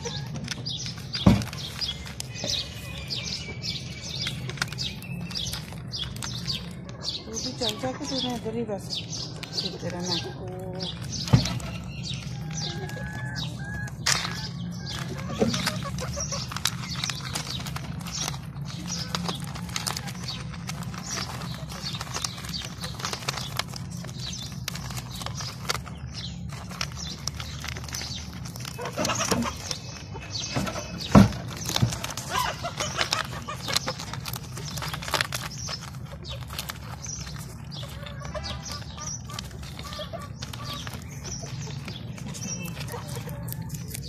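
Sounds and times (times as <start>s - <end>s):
rabbits chewing carrots: 0.0s - 44.0s.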